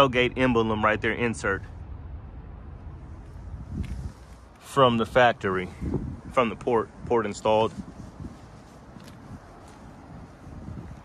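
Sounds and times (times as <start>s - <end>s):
faint outdoor background noise: 0.0s - 11.0s
wind buffeting microphone: 1.8s - 11.0s.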